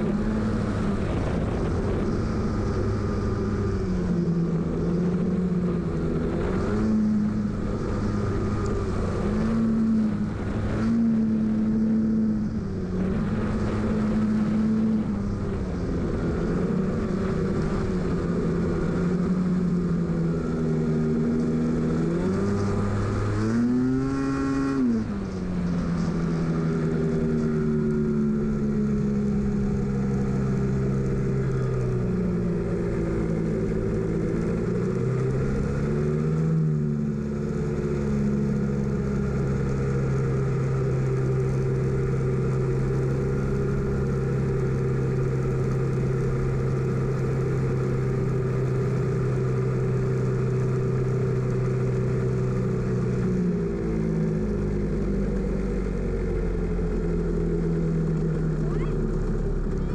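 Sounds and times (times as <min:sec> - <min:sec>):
race car engine at low revs: 0:00.0 - 0:59.9.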